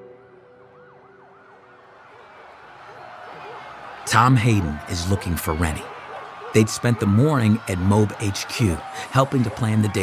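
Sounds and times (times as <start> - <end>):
faint emergency siren yelping: 0.0 - 10.0.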